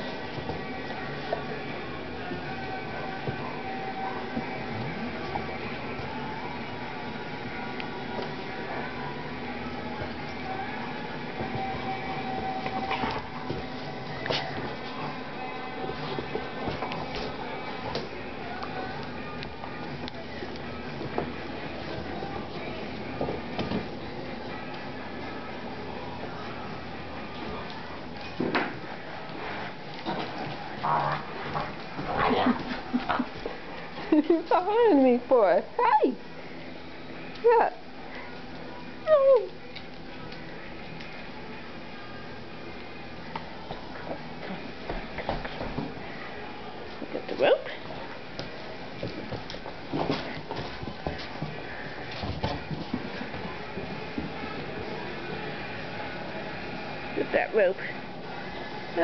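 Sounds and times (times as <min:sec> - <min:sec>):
dogs scuffling: 0:08.1 - 0:35.2, 0:43.2 - 0:56.8.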